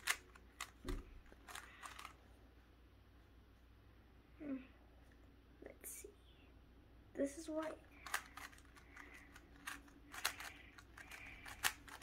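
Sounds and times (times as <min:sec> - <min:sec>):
plastic puzzle cube clicks: 0:08.0 - 0:12.0.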